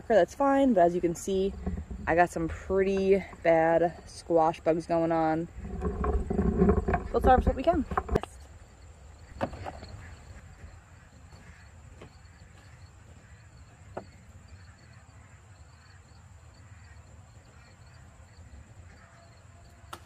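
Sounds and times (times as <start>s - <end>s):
insects chirping: 0.0s - 20.0s
vines and leaves rustling: 0.3s - 8.6s.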